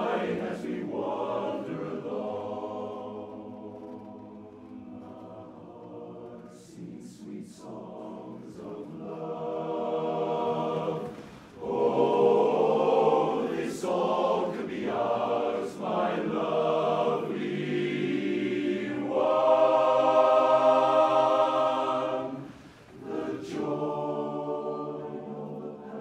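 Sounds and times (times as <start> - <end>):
male chorus singing a cappella: 0.0 - 26.0.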